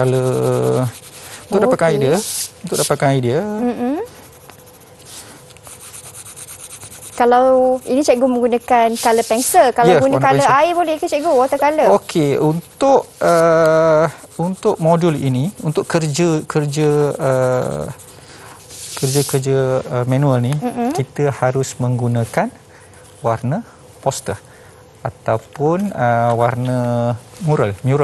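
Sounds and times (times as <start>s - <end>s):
pencil shading on paper: 0.0s - 3.0s, 4.0s - 19.5s
man speaking: 0.0s - 3.8s, 9.8s - 10.6s, 12.0s - 18.0s, 19.0s - 22.5s, 25.1s - 28.0s
man's drawn-out hesitation sound: 1.5s - 3.8s, 9.8s - 10.6s.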